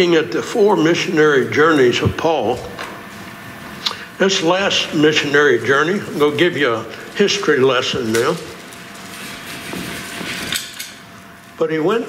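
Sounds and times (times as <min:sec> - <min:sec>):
rustling and handling noise: 0:05.9 - 0:11.6.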